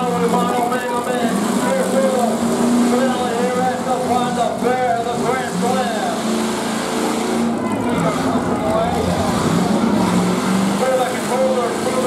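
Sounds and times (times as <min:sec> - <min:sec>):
car engines revving: 0:00.0 - 0:12.0
cars crashing together: 0:00.0 - 0:12.0.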